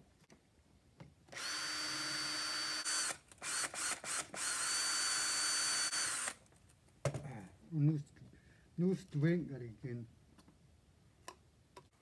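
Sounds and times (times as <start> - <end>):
cordless drill whining: 1.3 - 6.4.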